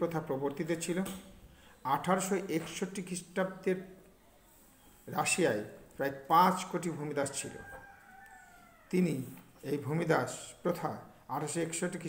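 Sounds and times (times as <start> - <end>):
man speaking: 0.0 - 1.2, 1.8 - 3.9, 5.1 - 7.8, 8.9 - 12.0.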